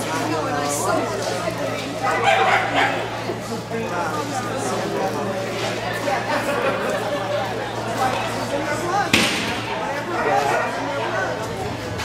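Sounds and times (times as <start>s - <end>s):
voices chattering in echoing hall: 0.0s - 12.0s
sharp thump: 9.1s - 9.7s.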